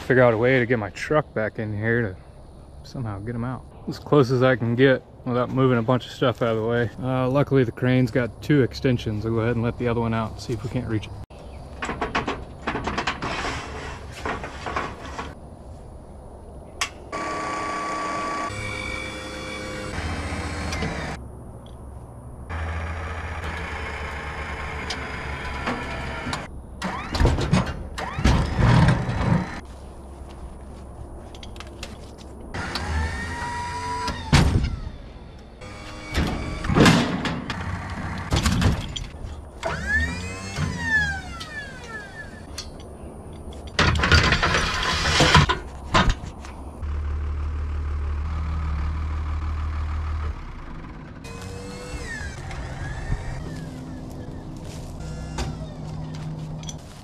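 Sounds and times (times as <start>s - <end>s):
clanks and knocks of wood and steel: 11.7s - 15.4s, 24.6s - 29.6s, 35.6s - 46.6s, 55.0s - 57.0s
hydraulic crane whine: 16.8s - 21.8s, 22.4s - 29.6s, 32.5s - 42.8s, 46.8s - 57.0s.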